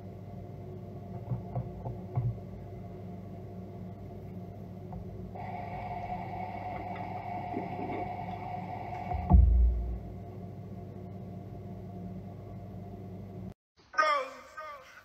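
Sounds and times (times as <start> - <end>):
low steady hum: 0.0 - 13.6
deep thump: 9.2 - 10.0.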